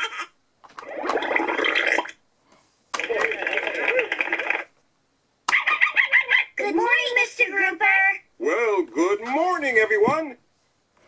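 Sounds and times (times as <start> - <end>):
toy speaker playing recorded clip: 5.5 - 8.2.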